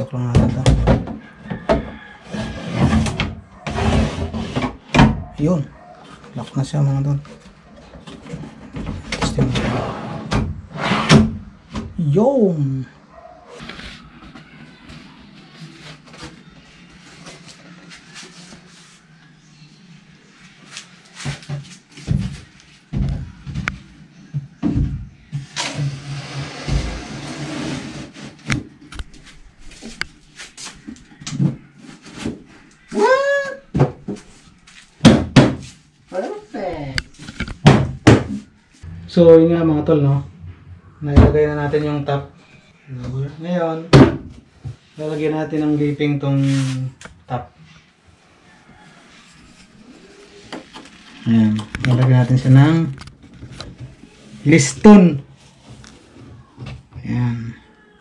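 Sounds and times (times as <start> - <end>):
wooden knocks and thunks: 0.3 - 2.0, 37.6 - 38.5
wood scraping on wood: 25.6 - 28.6.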